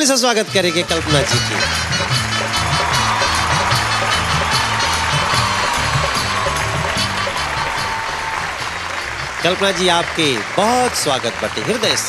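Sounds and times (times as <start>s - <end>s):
entrance music with bass beat: 1.0s - 10.2s
audience applauding and cheering: 1.0s - 12.0s.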